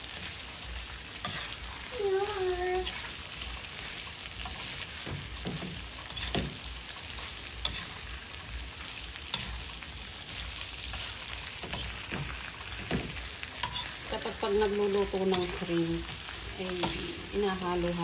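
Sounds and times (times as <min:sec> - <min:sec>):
shrimp sizzling in a wok: 0:00.0 - 0:18.0
metal spatula scraping pan: 0:01.2 - 0:01.8, 0:03.7 - 0:08.2, 0:10.8 - 0:17.4.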